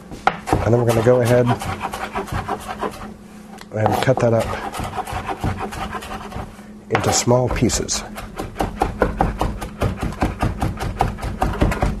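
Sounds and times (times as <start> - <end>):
knife chopping on cutting board: 0.2 - 3.1, 3.8 - 12.0.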